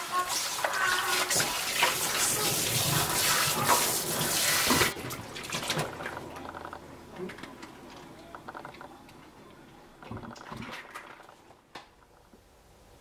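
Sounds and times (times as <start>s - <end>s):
tap water running into bowl: 0.0s - 5.0s.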